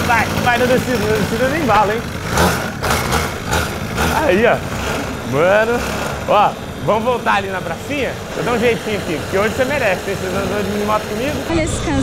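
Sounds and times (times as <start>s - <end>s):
small motorbike engine running: 0.0s - 12.0s.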